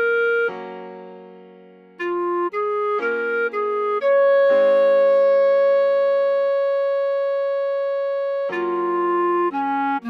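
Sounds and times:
clarinet long note: 0.0 - 0.7, 2.0 - 10.0.

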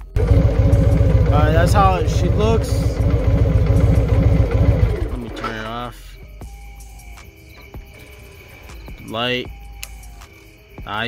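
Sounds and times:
high chirring drone: 0.0 - 9.2.

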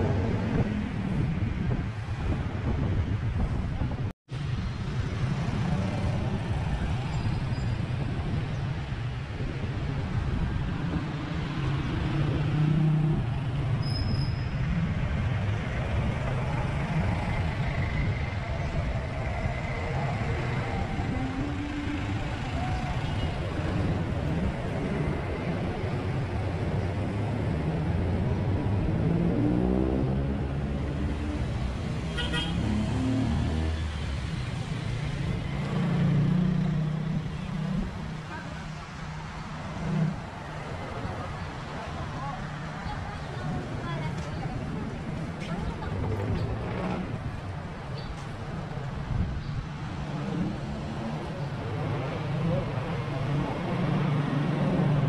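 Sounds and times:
road noise: 0.0 - 55.0.

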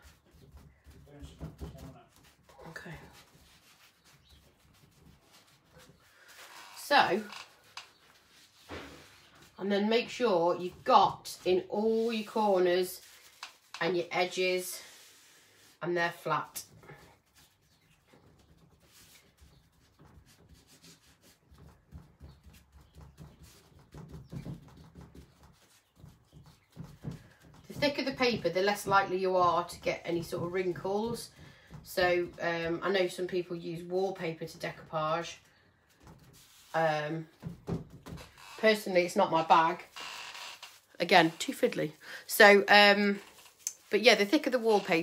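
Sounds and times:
cling film rubbing on paper: 0.0 - 34.6, 35.2 - 37.5, 38.4 - 45.0.

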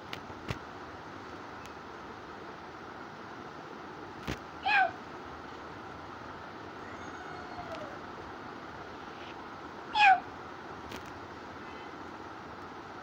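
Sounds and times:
steady background hiss: 0.0 - 13.0
high-pitched falling cries: 6.8 - 8.1.

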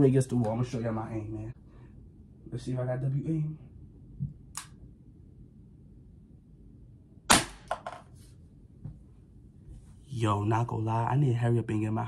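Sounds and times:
pellet pistol shot: 7.3 - 7.8.

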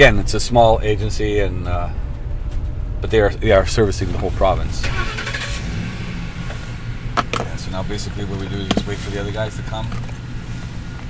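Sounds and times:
vehicle engine rumbling: 0.0 - 11.0
road noise hiss: 0.1 - 11.0.

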